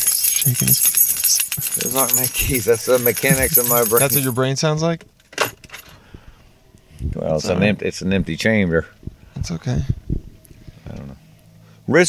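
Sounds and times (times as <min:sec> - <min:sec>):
small metal objects jingling: 0:00.0 - 0:04.5.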